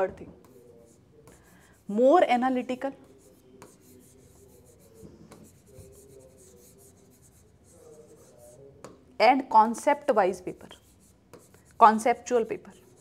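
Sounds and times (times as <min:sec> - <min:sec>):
pen scratching on whiteboard screen: 0:00.0 - 0:09.0, 0:09.6 - 0:13.0.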